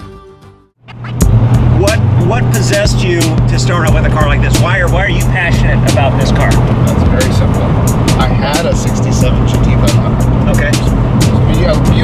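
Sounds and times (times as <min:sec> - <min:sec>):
car engine drone inside cabin: 0:00.8 - 0:12.0.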